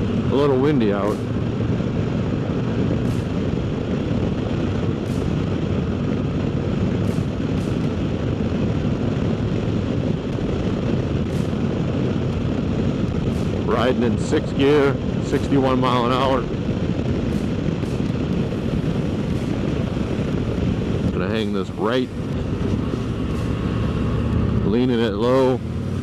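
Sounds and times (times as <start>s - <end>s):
motorcycle engine running: 0.0s - 26.0s
wind rushing over microphone: 0.0s - 26.0s.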